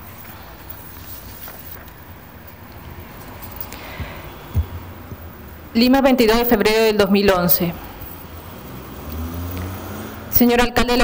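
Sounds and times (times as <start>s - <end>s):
low background rumble: 0.0s - 8.6s.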